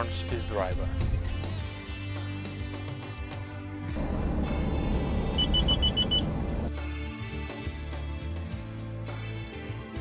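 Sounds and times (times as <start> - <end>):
short high warning beeps: 5.3 - 6.3.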